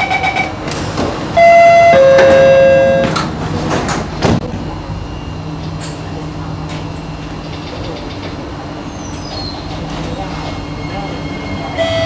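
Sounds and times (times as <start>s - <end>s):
sliding train doors closing: 0.0s - 12.0s
two-note door warning chime: 1.4s - 3.2s.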